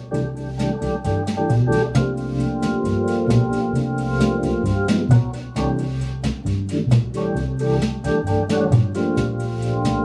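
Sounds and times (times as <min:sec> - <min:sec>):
bass line: 0:00.0 - 0:10.0
light percussion pattern: 0:00.0 - 0:10.0
organ playing jazz chords: 0:00.0 - 0:10.0.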